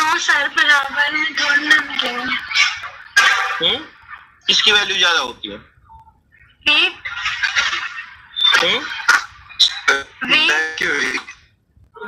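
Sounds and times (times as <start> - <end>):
overlapping voices over video call: 0.0 - 11.4.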